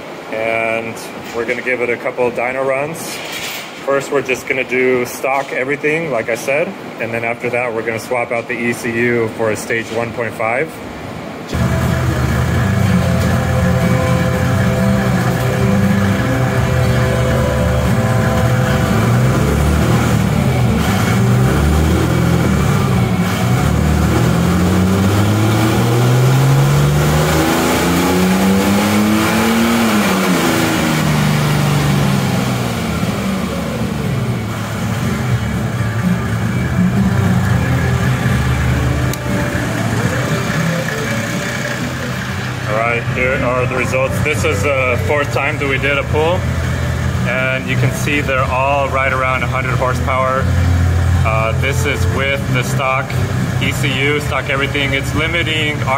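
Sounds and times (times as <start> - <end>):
diesel engine revving under load: 11.0 - 55.9.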